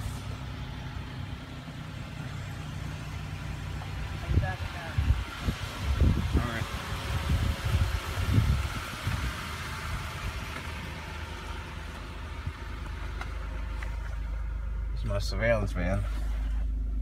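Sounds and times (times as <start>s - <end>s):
hiss: 0.0s - 0.4s
minivan engine idling: 0.0s - 17.0s.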